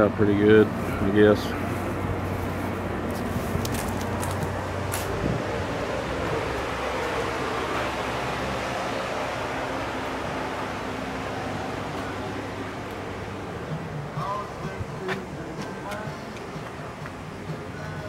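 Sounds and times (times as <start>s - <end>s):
low hum: 0.7s - 18.0s.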